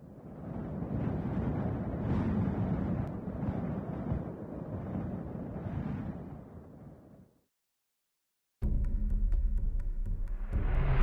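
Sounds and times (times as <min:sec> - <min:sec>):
low wind-like rumble: 0:00.0 - 0:07.4.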